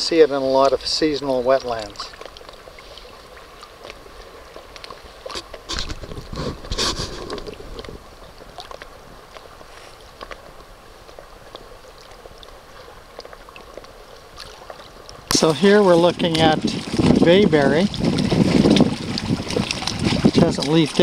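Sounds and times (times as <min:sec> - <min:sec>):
water lapping against boat: 0:00.0 - 0:21.0.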